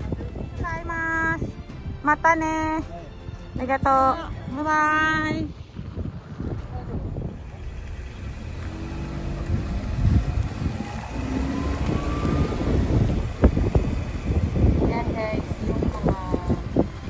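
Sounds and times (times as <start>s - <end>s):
wind buffeting microphone: 0.0s - 17.0s
car driving by: 5.5s - 17.0s.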